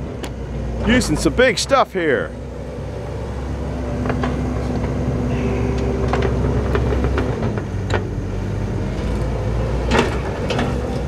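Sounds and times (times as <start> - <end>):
machine engine humming: 0.0 - 11.0.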